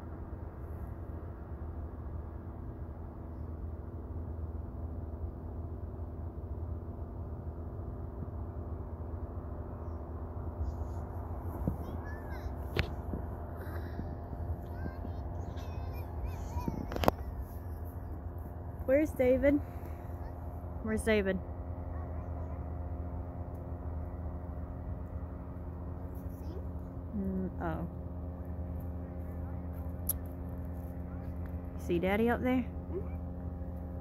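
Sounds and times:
paramotor engine droning: 0.0s - 34.0s
child squealing and babbling: 14.7s - 17.1s.

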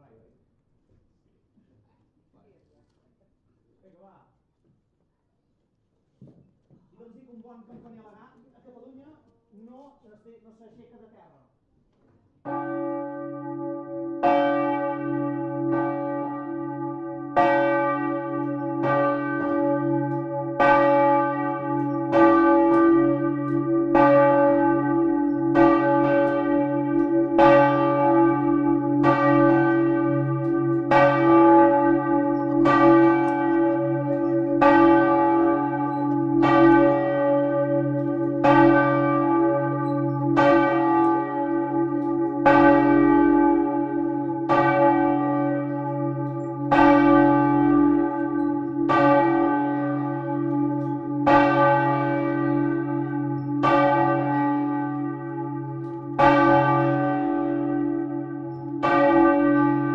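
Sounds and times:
church bells ringing: 12.4s - 59.9s
deep hum of bells: 12.5s - 59.9s.

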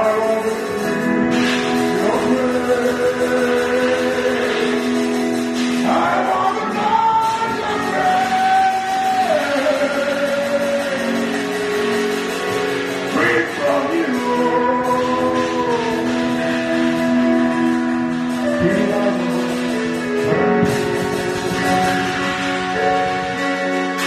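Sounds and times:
man singing into a microphone: 0.0s - 12.0s, 13.0s - 22.9s
backing chords: 0.0s - 24.0s.

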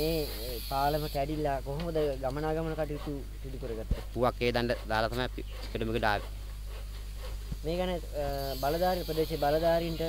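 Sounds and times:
steady high hiss: 0.0s - 3.0s, 7.4s - 10.0s
man speaking: 0.0s - 6.3s, 7.6s - 10.0s.

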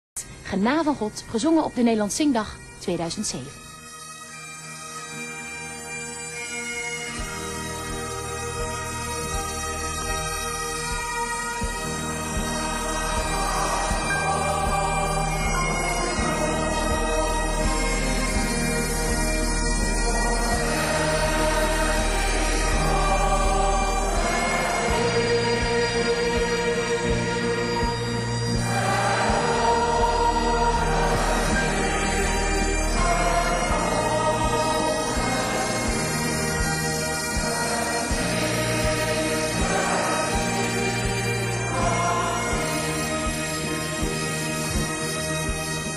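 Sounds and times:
bagpipe melody over drones: 0.3s - 45.9s
orchestra strings bowing: 0.6s - 45.9s
reedy instrumental chords: 2.6s - 45.9s
choir singing a hymn: 7.2s - 45.9s.

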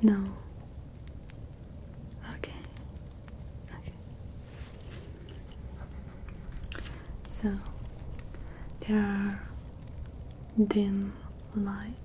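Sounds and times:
fire crackling and popping: 0.0s - 12.0s
low steady rumble: 0.0s - 12.0s.

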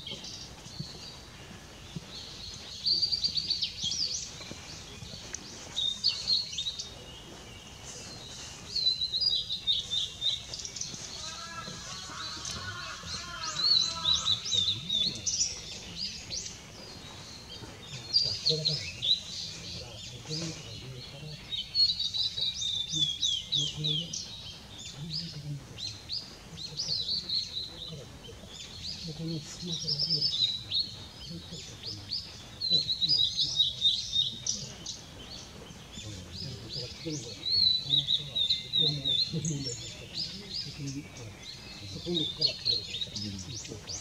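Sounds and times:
bird singing whistled notes: 0.0s - 44.0s.

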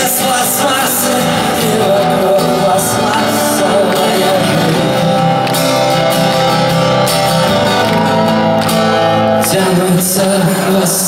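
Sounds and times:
strummed acoustic guitar: 0.0s - 11.0s.

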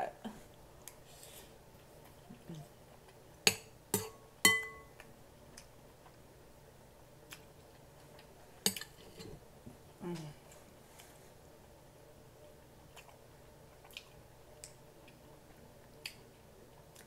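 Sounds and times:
spoon clinking on glass bowl: 4.0s - 4.9s.

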